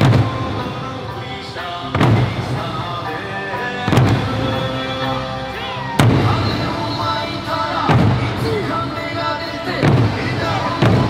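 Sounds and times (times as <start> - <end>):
large drums booming: 0.0 - 3.2, 3.8 - 5.2, 6.0 - 11.0
accompanying music: 0.0 - 11.0.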